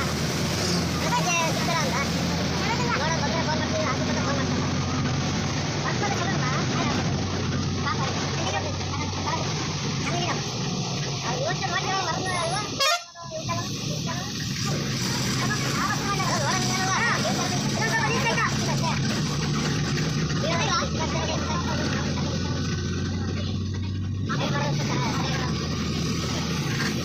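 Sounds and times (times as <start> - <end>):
bus engine running: 0.0 - 27.0
passengers talking: 0.0 - 27.0.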